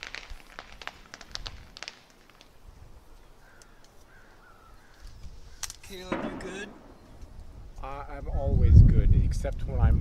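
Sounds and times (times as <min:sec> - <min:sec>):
branches and needles crackling: 0:00.0 - 0:10.0.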